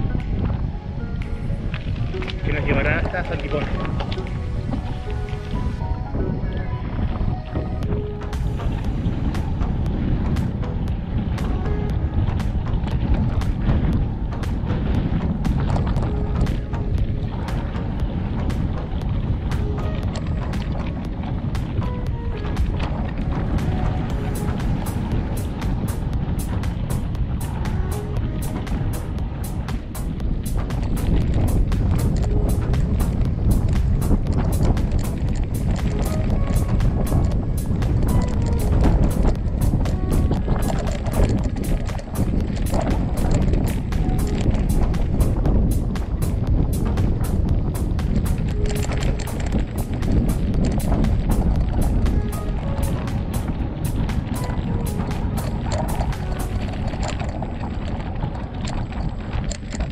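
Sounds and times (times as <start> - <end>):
background music: 0.0 - 58.2
wind noise on microphone: 0.0 - 59.9
bike rattling over stones: 6.8 - 59.9.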